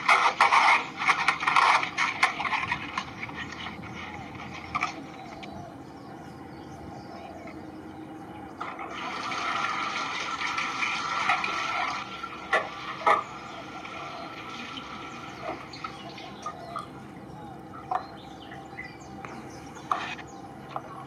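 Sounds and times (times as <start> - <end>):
birds calling and chattering: 0.0 - 21.0.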